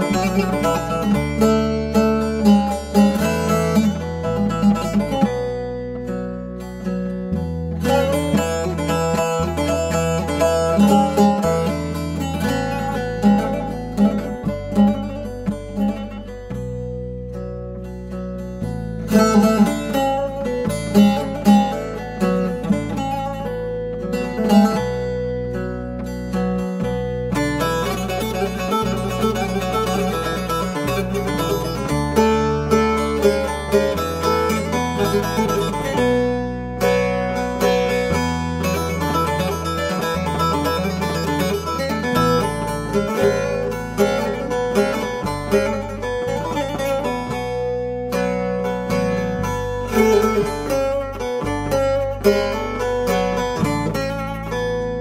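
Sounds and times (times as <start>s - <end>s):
low sustained bass notes: 0.0s - 55.0s
plucked saz melody: 0.0s - 55.0s.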